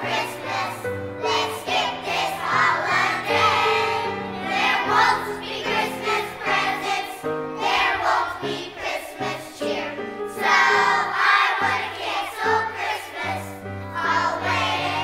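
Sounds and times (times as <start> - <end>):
children's choir singing: 0.0 - 15.0.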